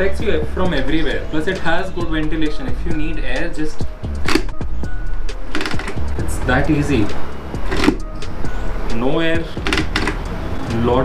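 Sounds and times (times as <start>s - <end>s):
helmet visor clicking shut: 4.2s - 4.6s, 9.6s - 10.3s.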